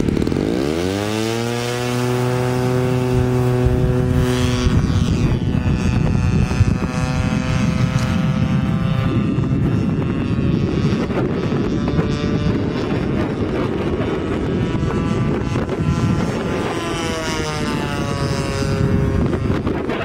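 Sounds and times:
model plane engine buzzing: 0.0 - 20.0
wind rumble on microphone: 0.0 - 20.0.

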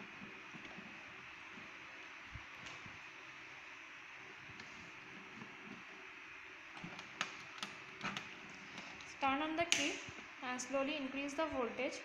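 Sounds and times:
patch cords clicking into sockets: 9.7 - 10.0.

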